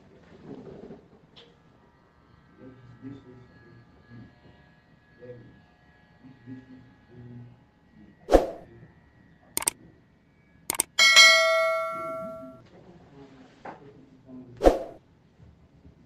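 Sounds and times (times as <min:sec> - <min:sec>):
bell ding: 0:10.7 - 0:12.6
clicks: 0:10.7 - 0:12.6.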